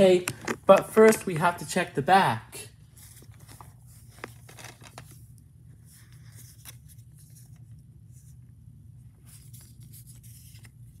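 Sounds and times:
steady low hum: 0.0 - 11.0
plastic case clicks and scrapes: 0.2 - 1.2.

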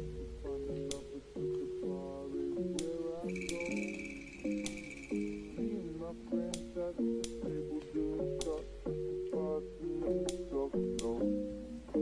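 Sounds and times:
plucked guitar chords: 0.0 - 12.0
sharp percussive clicks: 2.8 - 5.6
steady high tone: 3.2 - 6.2.

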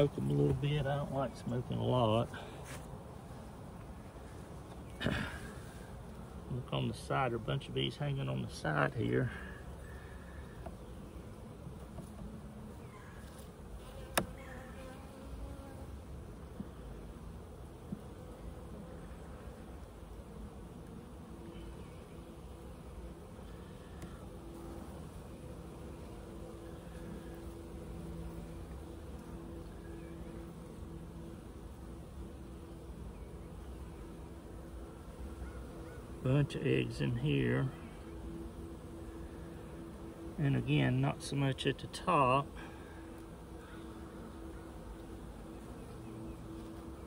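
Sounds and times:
bees buzzing: 0.0 - 47.0.

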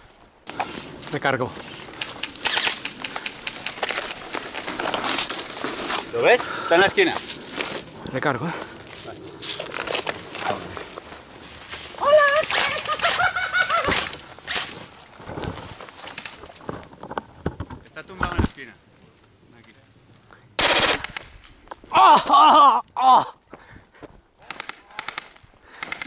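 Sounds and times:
rustling in dry brush: 0.0 - 17.0
gun handling clicks: 1.9 - 4.1, 24.5 - 26.0
airsoft rifle full-auto burst: 20.6 - 21.3.

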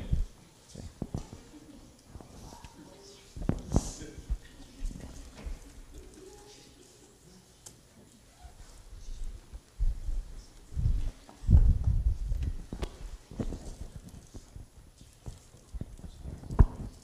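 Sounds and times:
dull low footstep thumps: 9.8 - 13.0.

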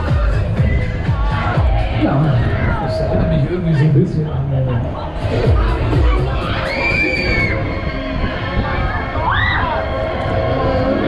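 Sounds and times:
fairground ride music: 0.0 - 11.0
long high scream: 6.5 - 7.8, 9.2 - 9.9.

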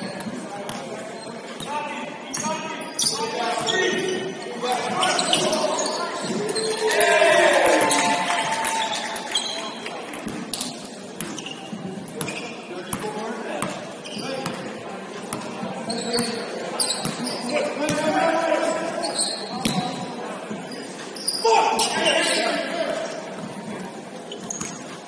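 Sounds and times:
sneakers squeaking: 0.0 - 7.0, 7.9 - 25.0
players calling out: 2.4 - 9.6
loud shouting: 6.4 - 9.2.

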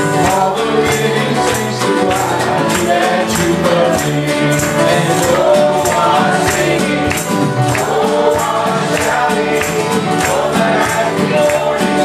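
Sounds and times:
electric guitar: 0.0 - 12.0
group singing gospel song: 0.0 - 12.0
piano: 0.0 - 12.0.

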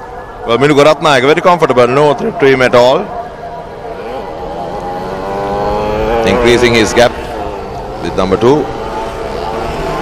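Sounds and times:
motorcycle engine running high: 3.5 - 10.0.

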